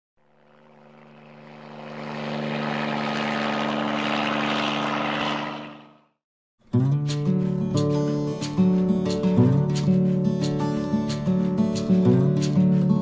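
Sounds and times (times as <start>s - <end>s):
drone propellers buzzing: 0.2s - 6.2s.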